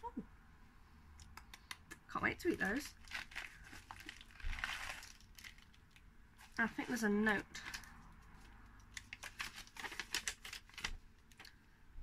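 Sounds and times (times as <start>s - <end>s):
bubble-wrap mailer crinkling: 2.5s - 11.7s.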